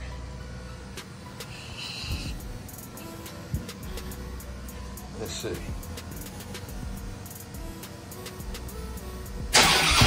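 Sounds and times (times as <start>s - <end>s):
motorcycle engine starting and idling: 9.5s - 10.0s.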